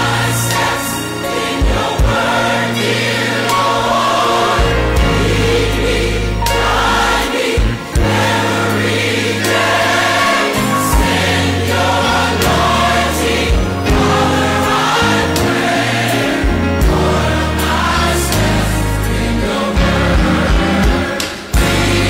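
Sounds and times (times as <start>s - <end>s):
choir singing in harmony: 0.0s - 22.0s
sustained bass notes: 0.0s - 22.0s.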